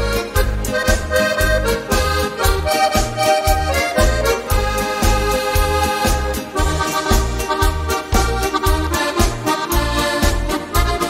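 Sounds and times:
accordion playing melody chords: 0:00.0 - 0:11.0
oom-pah bass beat: 0:00.0 - 0:11.0.

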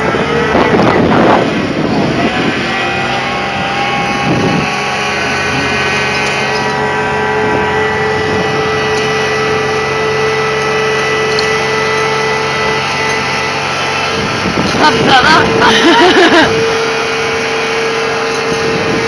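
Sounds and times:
crane engine running: 0:00.0 - 0:19.0
high whine: 0:00.0 - 0:19.0.

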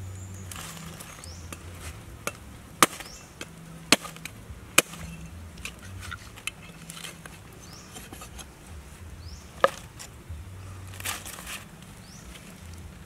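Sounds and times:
cleaver chopping fish on wood: 0:01.4 - 0:05.1.

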